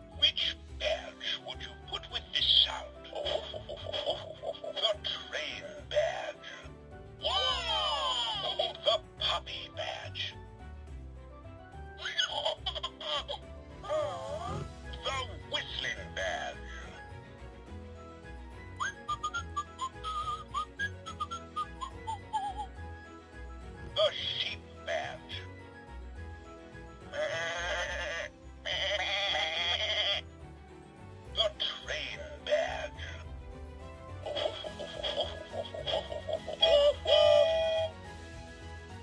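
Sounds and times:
low musical backing: 0.0 - 39.0
toy playing whistled tune: 18.7 - 22.7.

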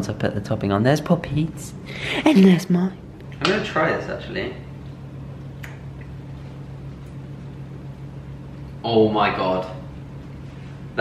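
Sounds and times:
steady low hum: 0.0 - 11.0
wet lip smack: 5.6 - 5.8.

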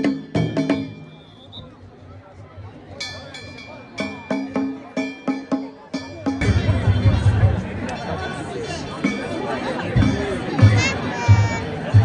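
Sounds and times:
festival drum beating: 0.0 - 1.3, 3.0 - 12.0
dense crowd chatter: 0.0 - 12.0.

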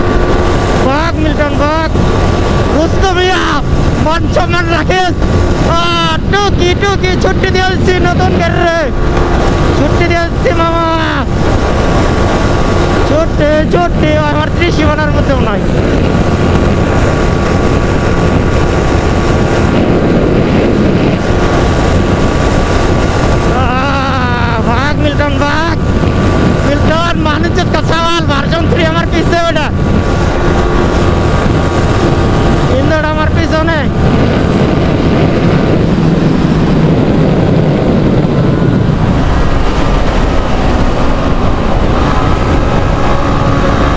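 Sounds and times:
motorcycle engine running: 0.0 - 43.9
wind noise on microphone: 0.0 - 43.9.

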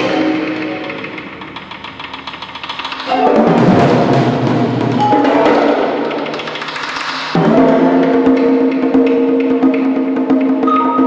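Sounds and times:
tom-toms drumming: 0.0 - 11.0.

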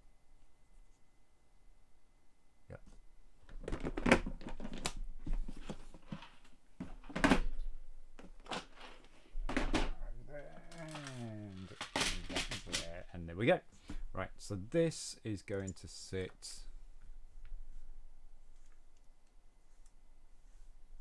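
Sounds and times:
plastic pieces clattering in drawer: 10.7 - 12.9.

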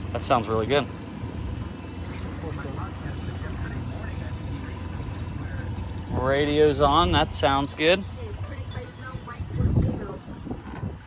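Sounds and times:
outboard motor running: 0.0 - 11.0
water washing along hull: 0.0 - 11.0.

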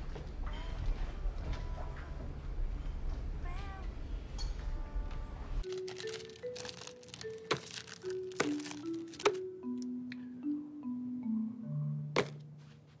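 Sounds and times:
soft film score music: 5.6 - 13.0.

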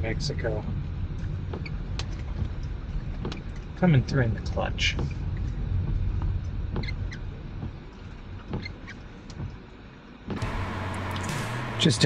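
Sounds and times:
car road rumble inside cabin: 0.0 - 12.0.

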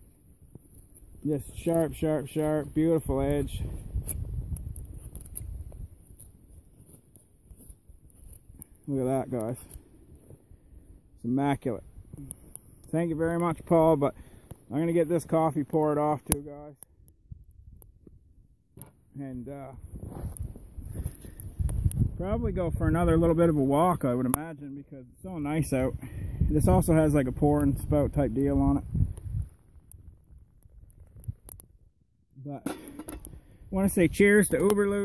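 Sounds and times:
wind rumble on microphone: 0.0 - 6.9, 17.1 - 18.4, 19.6 - 24.0, 25.1 - 31.9
light clicks and knocks of handling: 4.0 - 10.4.

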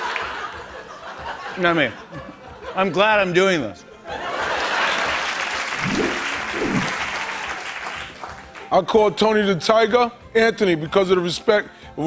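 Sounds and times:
audience applauding: 4.8 - 8.6.

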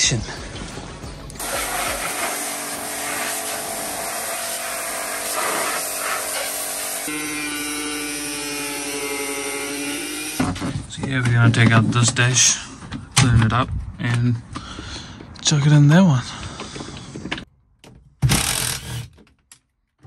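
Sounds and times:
pressure washer spray hiss: 1.4 - 7.1.

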